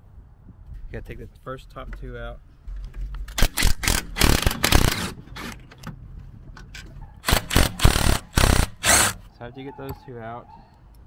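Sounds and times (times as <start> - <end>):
impact wrench hammering: 7.3 - 9.2.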